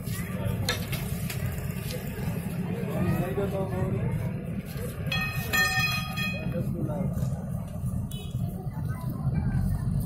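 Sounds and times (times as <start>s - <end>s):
faint voices: 0.0s - 10.0s
low street rumble: 0.0s - 10.0s.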